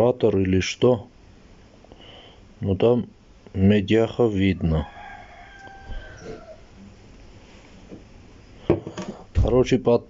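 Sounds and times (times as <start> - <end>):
rooster crowing: 4.6 - 6.9.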